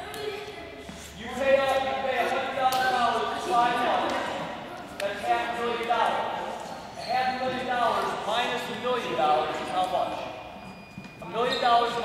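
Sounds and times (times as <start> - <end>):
person talking with echo: 0.0 - 10.4.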